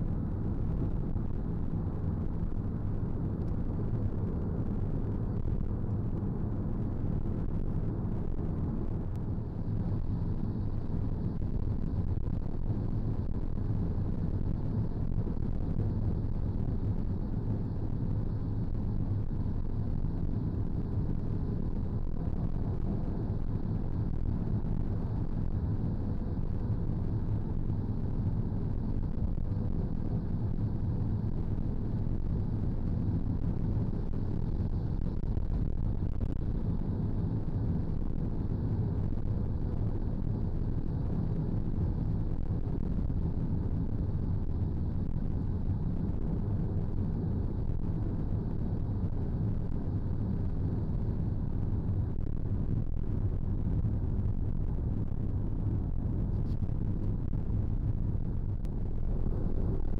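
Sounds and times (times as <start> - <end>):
road and engine rumble in van: 0.0 - 59.9.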